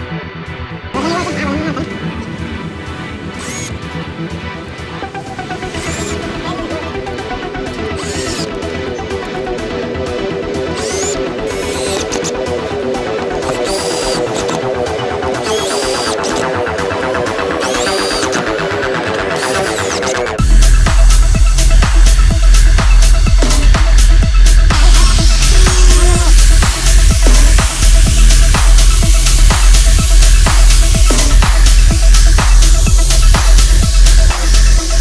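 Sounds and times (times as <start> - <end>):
electronic background music: 0.0 - 35.0.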